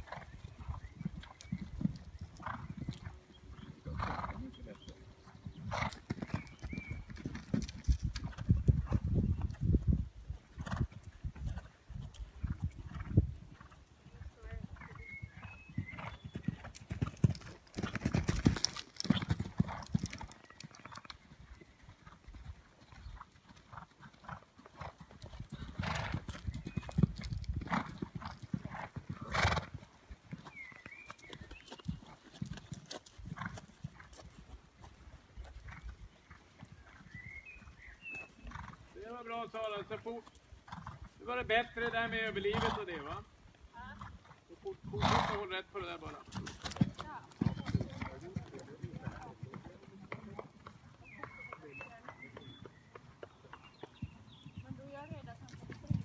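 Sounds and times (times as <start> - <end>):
horse hooves thudding on sand: 16.2 - 20.9, 46.3 - 50.5.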